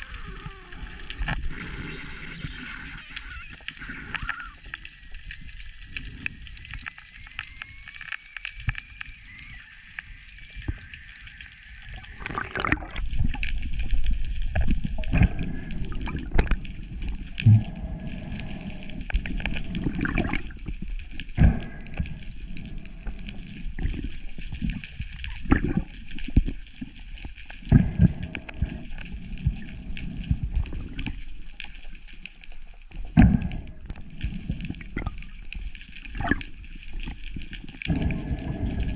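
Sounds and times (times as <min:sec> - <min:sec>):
water sloshing and gurgling: 0:00.0 - 0:38.9.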